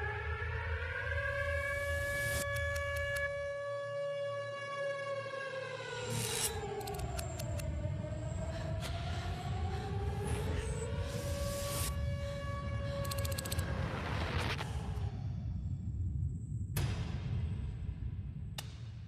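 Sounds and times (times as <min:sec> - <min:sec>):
wailing air-raid siren: 0:00.0 - 0:14.2
sharp clicks: 0:06.7 - 0:07.7.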